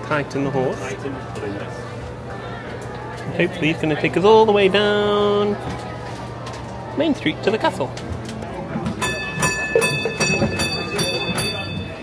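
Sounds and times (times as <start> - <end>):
crowd chatter: 0.0 - 12.0
trolley bell ringing: 8.9 - 12.0.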